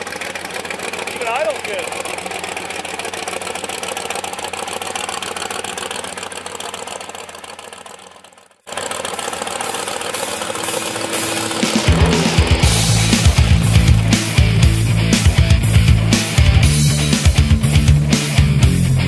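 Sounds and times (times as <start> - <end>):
car engine idling: 0.0 - 19.0
rock music with heavy drums: 10.1 - 19.0.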